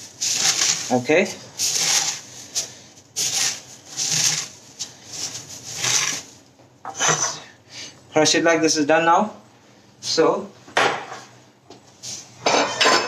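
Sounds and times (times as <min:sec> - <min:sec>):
cornflakes crunching by hand: 0:00.0 - 0:06.4.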